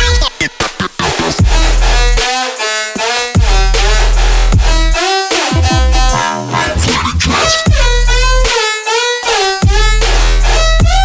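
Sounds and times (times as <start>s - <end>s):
heavy bass: 0.0s - 11.0s.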